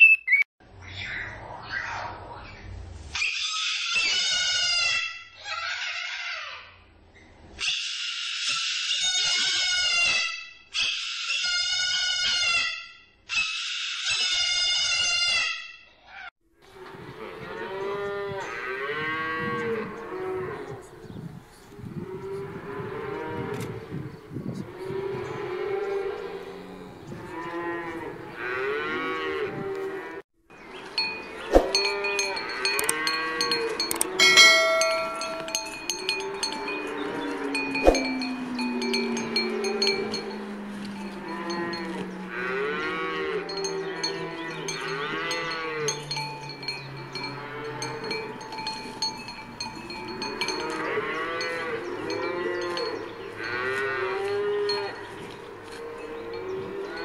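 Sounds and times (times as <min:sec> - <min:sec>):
cowbells clanking: 0:30.8 - 0:57.0
cattle mooing: 0:31.7 - 0:55.0.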